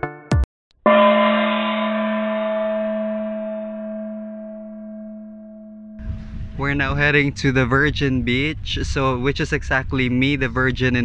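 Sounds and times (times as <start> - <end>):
bell-like struck note: 0.9 - 6.4.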